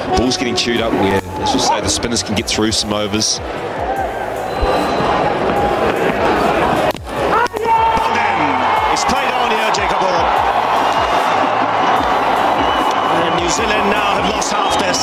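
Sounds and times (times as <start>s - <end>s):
stadium crowd cheering: 3.6s - 15.0s.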